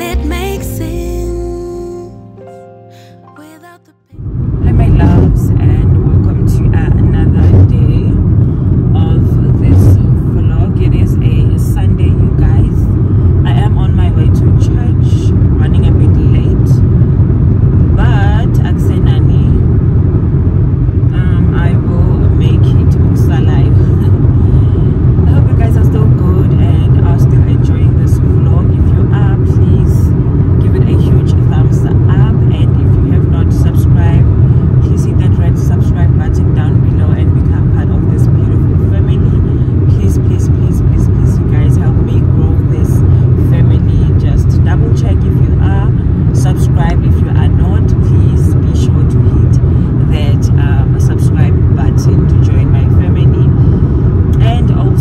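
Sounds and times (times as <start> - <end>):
car road and engine rumble: 0.0 - 55.0.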